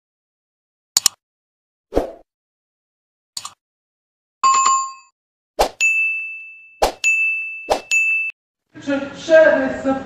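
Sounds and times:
high bell ding: 4.4 - 5.1, 5.8 - 8.4.

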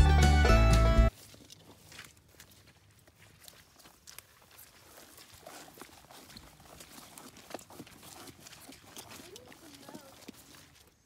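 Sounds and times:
rubber boots on muddy ground: 0.8 - 11.0.

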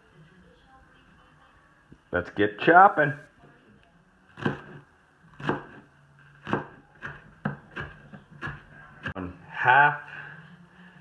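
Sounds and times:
knife chopping leeks: 4.4 - 9.3.

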